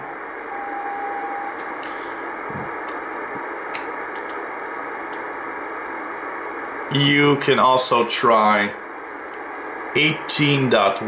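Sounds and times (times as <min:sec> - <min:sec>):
shortwave radio hiss: 0:00.0 - 0:11.0
morse code tone: 0:00.1 - 0:01.6.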